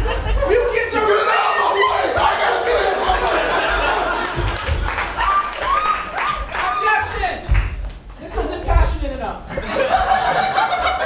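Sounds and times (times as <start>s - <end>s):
audience laughing: 0.0s - 6.1s, 9.5s - 11.0s
performers' voices: 0.0s - 7.5s.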